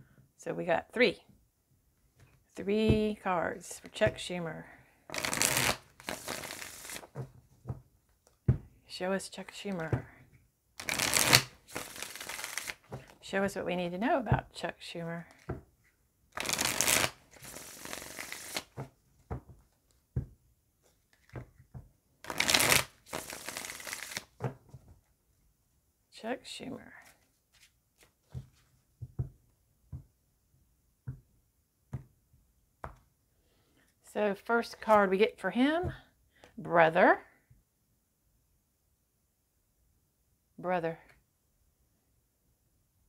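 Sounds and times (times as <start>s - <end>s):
cards riffle-shuffled: 5.1s - 7.3s, 10.8s - 13.2s, 16.4s - 18.9s, 20.8s - 21.6s, 22.2s - 24.8s, 27.0s - 28.8s.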